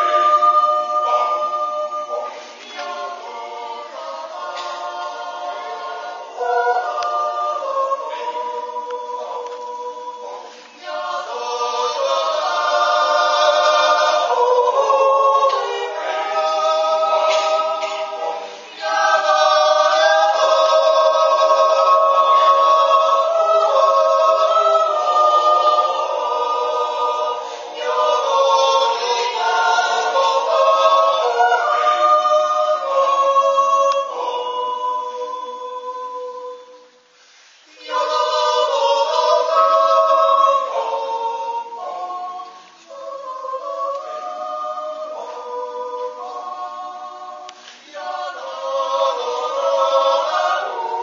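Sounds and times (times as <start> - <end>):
choir yodeling a cappella: 0.0 - 51.0.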